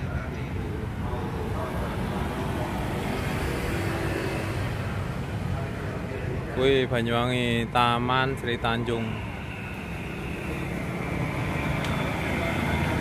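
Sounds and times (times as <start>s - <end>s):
faint voices: 0.0s - 13.0s
street traffic rumble: 0.0s - 13.0s.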